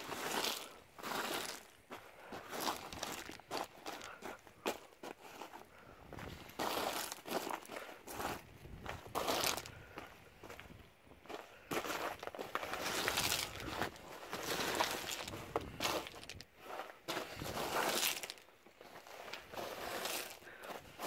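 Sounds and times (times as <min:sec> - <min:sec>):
crushed stone crunching and scraping: 0:00.0 - 0:21.0.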